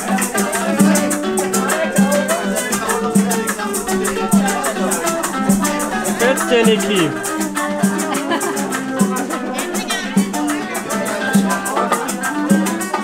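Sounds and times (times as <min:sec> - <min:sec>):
guitar: 0:00.0 - 0:13.0
maracas shaking: 0:00.0 - 0:13.0.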